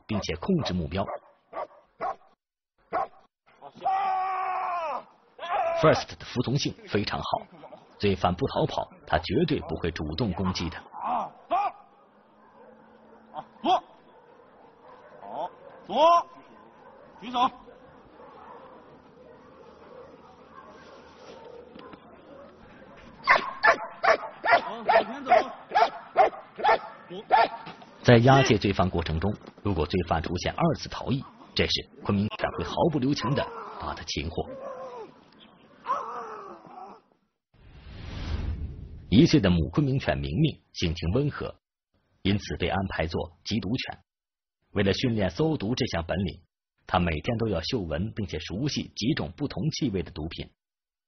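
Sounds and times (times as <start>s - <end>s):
dog barking: 0.2s - 2.3s, 2.9s - 3.2s, 10.9s - 27.8s
dog barking sharply: 0.6s - 2.3s, 2.9s - 3.2s, 23.2s - 27.7s.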